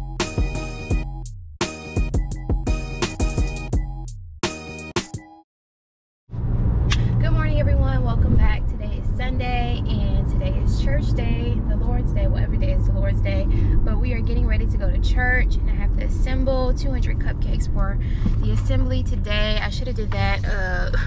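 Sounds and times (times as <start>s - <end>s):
car engine and tyres rumbling: 6.3s - 21.0s
woman talking: 7.2s - 21.0s.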